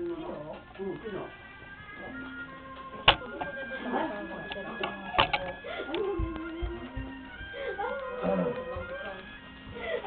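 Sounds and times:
faint steady music tones: 0.0s - 10.0s.

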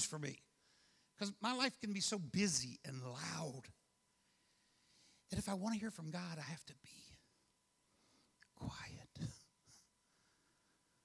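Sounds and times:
man whispering into a microphone: 8.4s - 9.8s.

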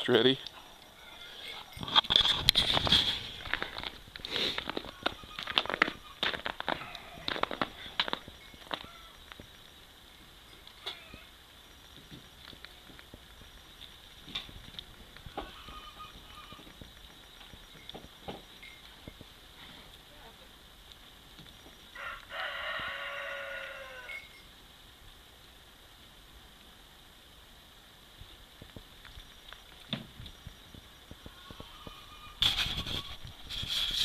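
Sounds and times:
dogs scuffling on ice: 1.8s - 8.9s.

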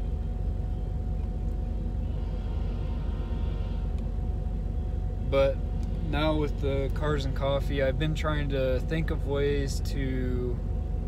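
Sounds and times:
train rumbling past: 1.8s - 9.2s.

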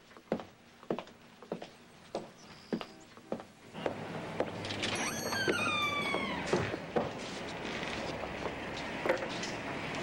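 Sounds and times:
door hinge squeaking: 4.8s - 6.8s.

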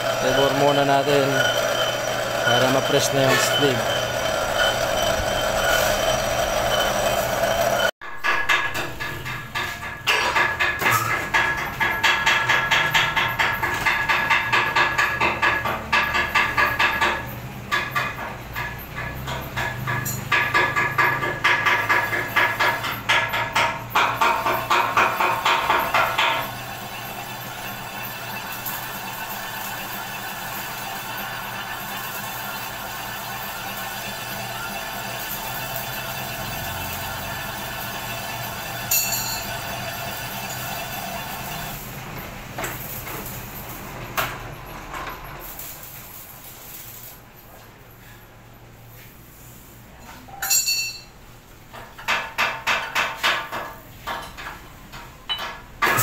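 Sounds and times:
metal lathe boring: 0.0s - 9.2s, 18.7s - 42.0s.

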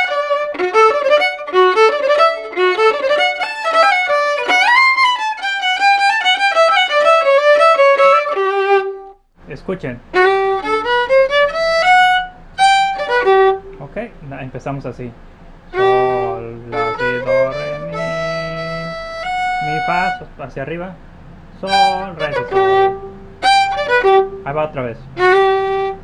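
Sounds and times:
solo violin playing: 0.0s - 9.2s, 10.1s - 13.8s, 15.7s - 20.4s, 21.6s - 26.0s
low hum: 10.2s - 26.0s.

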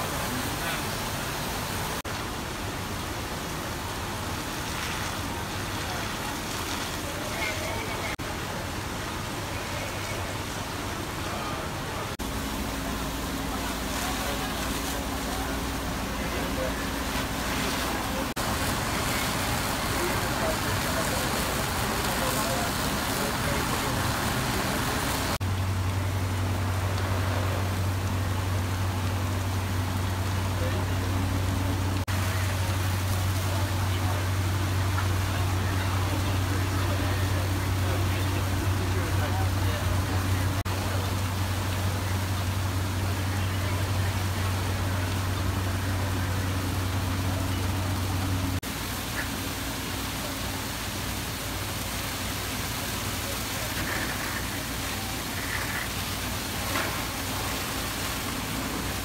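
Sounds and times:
pump engine droning: 0.0s - 59.0s
water streams hitting fire: 0.0s - 59.0s.

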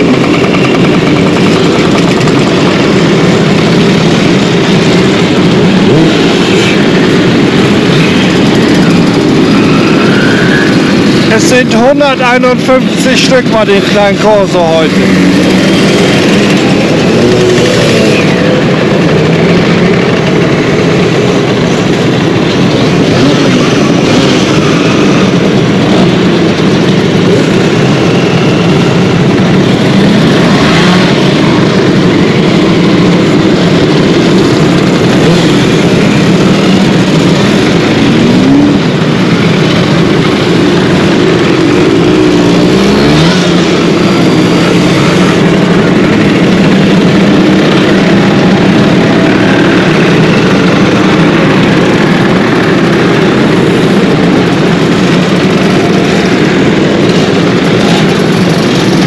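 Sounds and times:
scooter engines passing: 0.0s - 59.0s
scooter engines revving: 0.0s - 59.0s.

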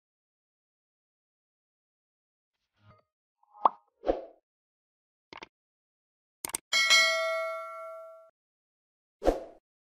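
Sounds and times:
bell-like ding: 6.7s - 8.3s.

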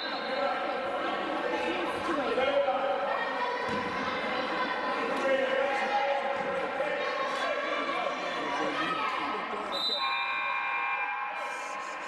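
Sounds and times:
voices echoing in a gymnasium: 0.0s - 12.0s.

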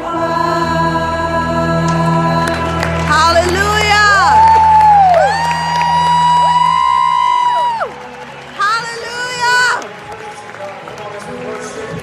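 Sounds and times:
woman singing: 0.0s - 5.4s
band playing: 0.0s - 11.9s.

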